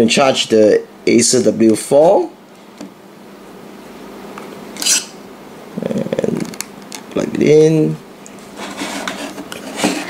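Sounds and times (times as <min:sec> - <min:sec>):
light rubbing and clattering: 0:08.4 - 0:10.0.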